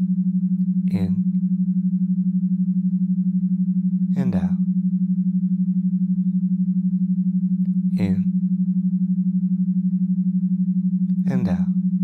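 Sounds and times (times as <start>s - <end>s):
pulsing low droning tone: 0.0s - 12.0s.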